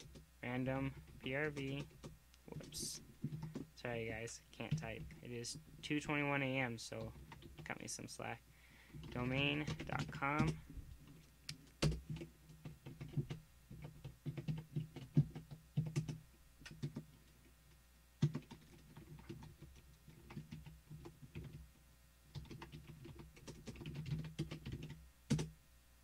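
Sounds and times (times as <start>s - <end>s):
typing on computer keyboard: 0.0s - 0.2s, 0.8s - 3.7s, 7.0s - 7.7s, 8.9s - 17.2s, 18.2s - 21.6s, 22.3s - 25.5s.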